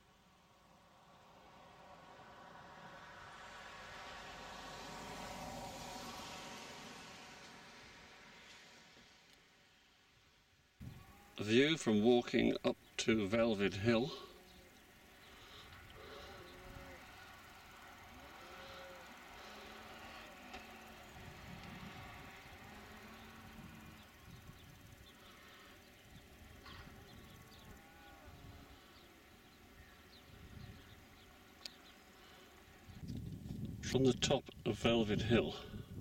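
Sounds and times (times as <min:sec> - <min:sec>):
distant sheep bleating: 0:14.0 - 0:24.3, 0:26.5 - 0:30.1.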